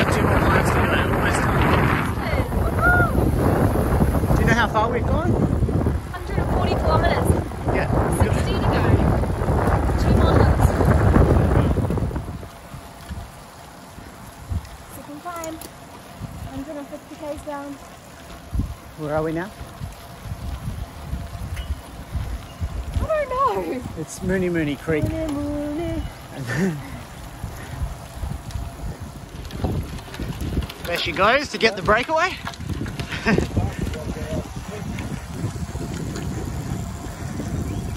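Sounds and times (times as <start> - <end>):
wind rushing over microphone: 0.0 - 13.4, 14.0 - 15.4, 16.0 - 17.7, 18.4 - 37.9.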